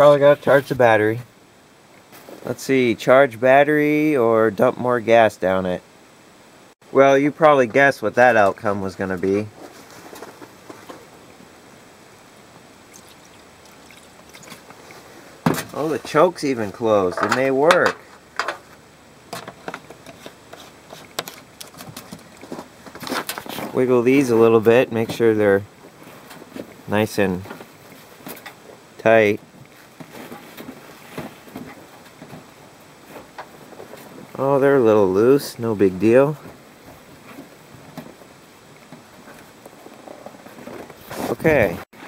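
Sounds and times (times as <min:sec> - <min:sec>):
gasoline trickling from bottle: 0:12.9 - 0:15.3, 0:20.0 - 0:23.7.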